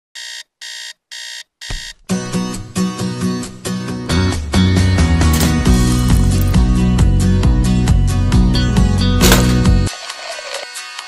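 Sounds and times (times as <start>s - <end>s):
digital alarm clock beeping: 0.2s - 1.9s
guitar music: 2.1s - 9.9s.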